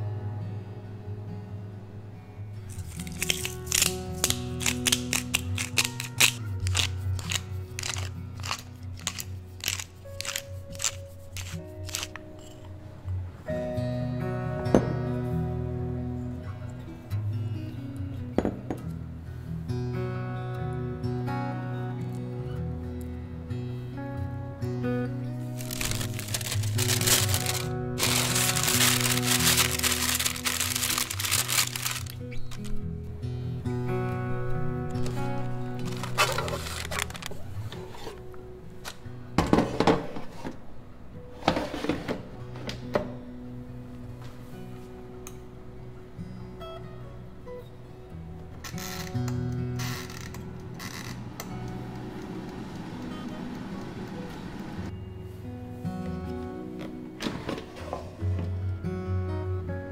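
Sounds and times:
background music: 0.0s - 40.0s, 40.6s - 59.9s
parchment paper crinkling: 2.7s - 12.6s, 25.6s - 32.8s, 35.0s - 37.5s.

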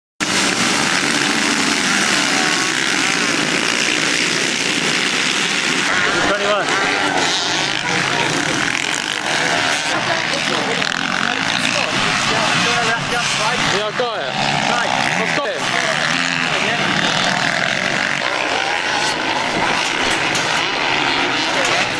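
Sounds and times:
motocross motorcycles revving: 0.2s - 21.9s
voices in background: 5.8s - 21.9s.

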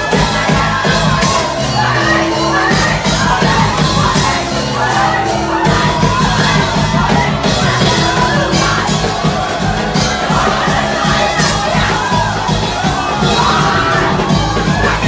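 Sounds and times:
congregation shouting and cheering: 0.0s - 15.0s
worship band with drums: 0.0s - 15.0s.

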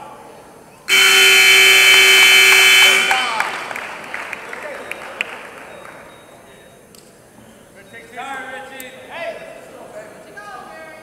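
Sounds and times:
scoreboard buzzer blast: 0.9s - 4.0s.

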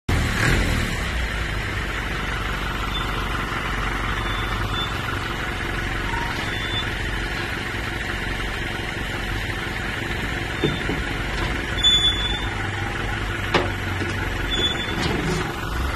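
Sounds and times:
forklift engine running: 0.1s - 15.9s.

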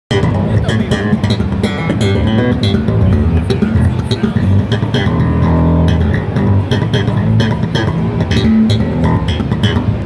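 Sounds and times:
electric bass guitar run: 0.1s - 10.0s.

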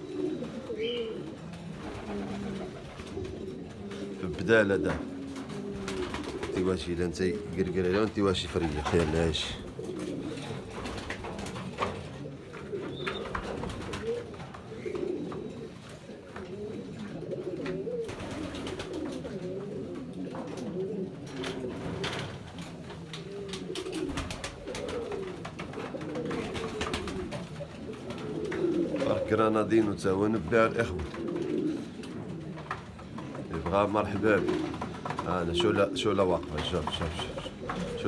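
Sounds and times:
pigeons cooing: 0.0s - 38.0s.

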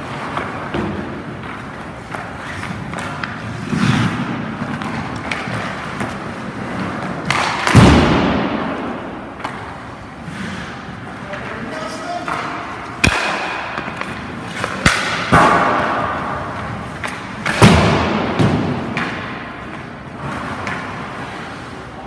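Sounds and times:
hockey stick shooting puck: 0.0s - 11.4s, 12.0s - 21.4s
skates scraping ice: 0.0s - 22.0s.

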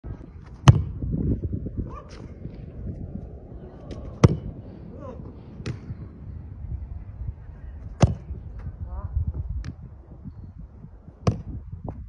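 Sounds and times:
boot kicking football: 0.4s - 1.3s, 3.9s - 4.6s, 7.9s - 8.7s.

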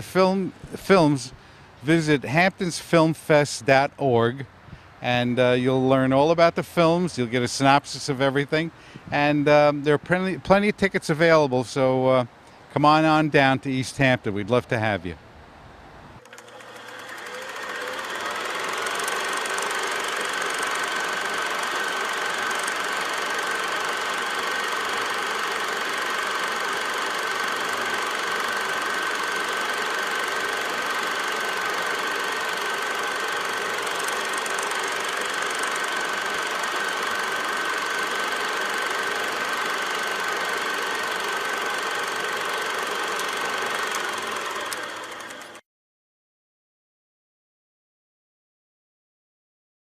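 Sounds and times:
film projector running: 0.0s - 1.0s, 16.2s - 45.6s
projector whine: 16.2s - 45.6s.

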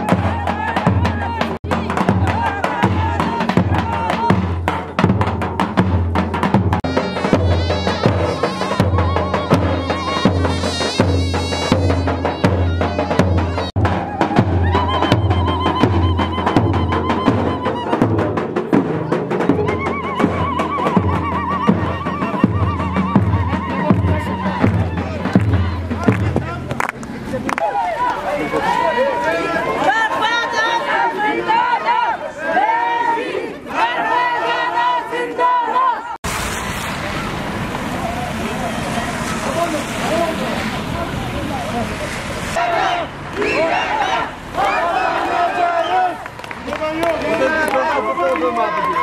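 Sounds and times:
crowd singing: 0.0s - 4.7s, 6.8s - 18.3s, 27.6s - 36.3s, 42.3s - 46.4s
large drum beaten with stick: 0.0s - 26.5s.

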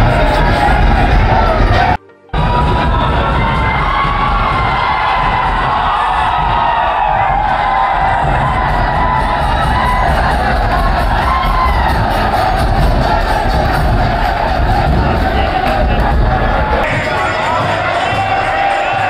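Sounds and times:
background music: 0.0s - 19.0s
crowd cheering and shouting: 0.0s - 19.0s.

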